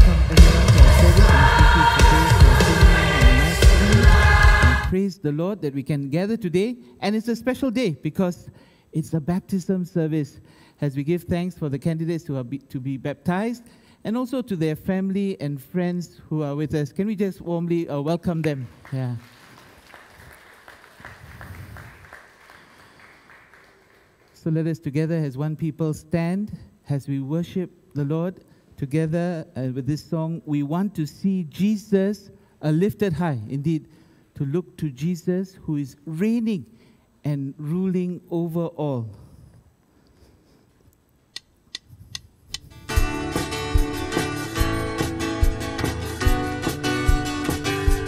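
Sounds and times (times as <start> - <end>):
congregation applauding faintly: 18.5 - 24.4
strummed acoustic guitar: 42.8 - 48.0.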